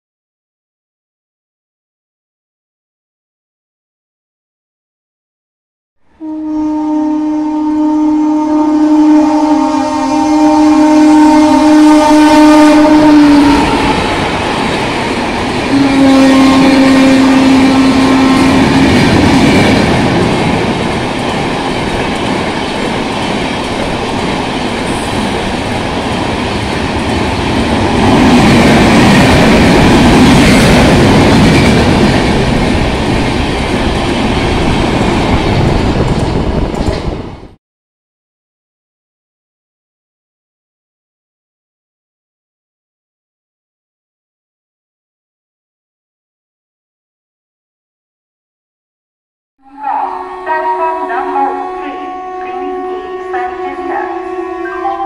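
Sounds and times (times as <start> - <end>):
two-tone locomotive horn blast: 6.1 - 19.6, 49.6 - 55.0.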